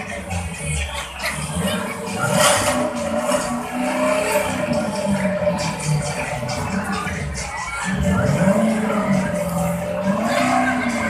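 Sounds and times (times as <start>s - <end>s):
dance music: 0.0s - 11.0s
race car engine revving: 0.0s - 11.0s.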